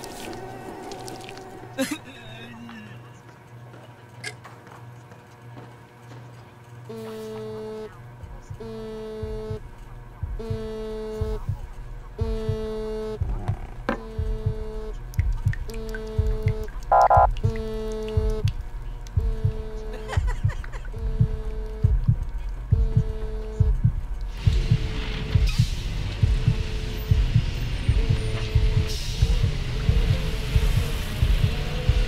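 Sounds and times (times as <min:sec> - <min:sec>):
low thudding beats: 0:08.2 - 0:32.0
mobile phone vibrating: 0:12.2 - 0:14.9, 0:15.7 - 0:18.5, 0:19.2 - 0:22.0.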